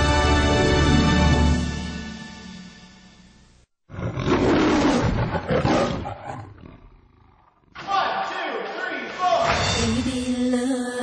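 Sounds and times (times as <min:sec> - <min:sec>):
lion roaring: 0:03.9 - 0:07.8.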